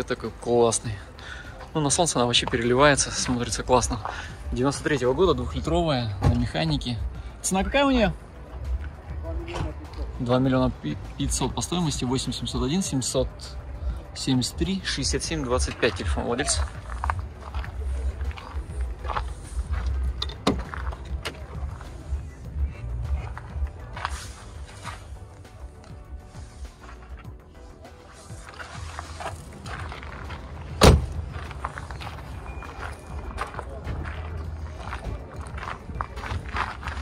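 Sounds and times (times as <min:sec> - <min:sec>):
faint music: 0:00.0 - 0:37.0
loud sharp thump: 0:30.8 - 0:31.2.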